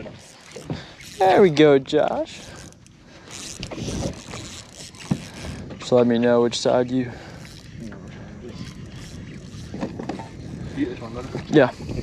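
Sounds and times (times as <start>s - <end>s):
wind noise on microphone: 2.2s - 12.0s.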